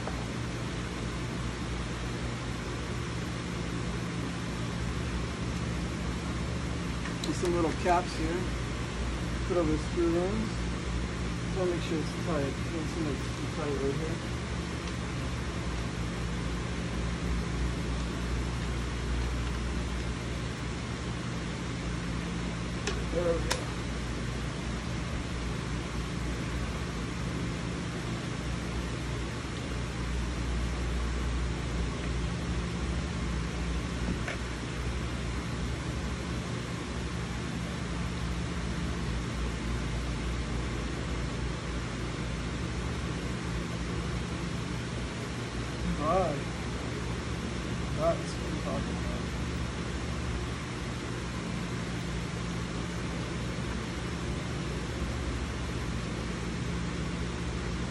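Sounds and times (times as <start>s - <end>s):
low mechanical hum with hiss: 0.0s - 57.9s.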